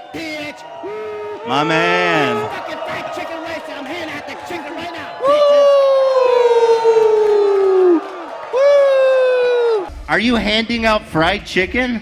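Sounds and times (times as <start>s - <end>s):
man yelling through a microphone: 0.0s - 7.9s.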